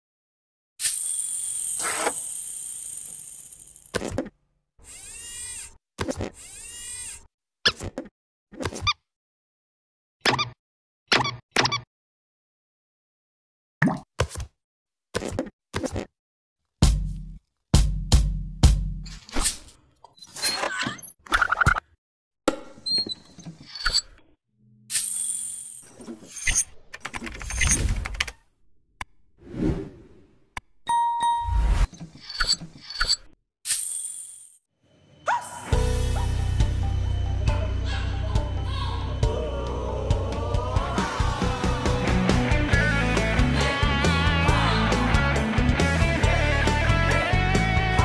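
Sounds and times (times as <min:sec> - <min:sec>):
short run of squeaks: 0:04.0 - 0:08.1, 0:19.3 - 0:21.8, 0:22.8 - 0:24.2, 0:24.9 - 0:28.3, 0:31.8 - 0:33.9.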